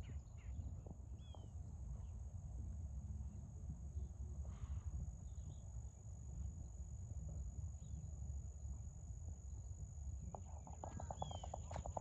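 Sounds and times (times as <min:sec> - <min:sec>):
low fluctuating rumble: 0:00.4 - 0:12.0
faint bird chirps: 0:01.2 - 0:02.2, 0:10.5 - 0:12.0
high-pitched insect drone: 0:10.2 - 0:12.0.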